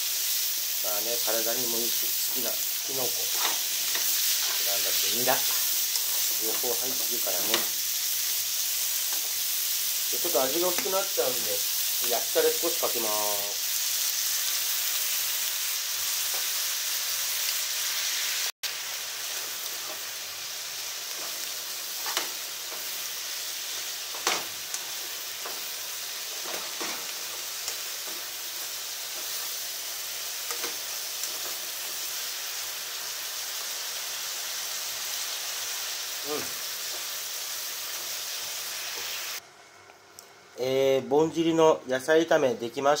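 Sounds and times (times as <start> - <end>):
stir-fry sizzling in a frying pan: 0.0 - 40.6.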